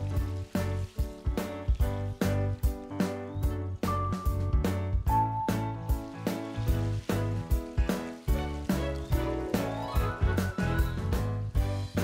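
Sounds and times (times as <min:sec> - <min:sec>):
upbeat music with drums and bass: 0:00.0 - 0:12.0.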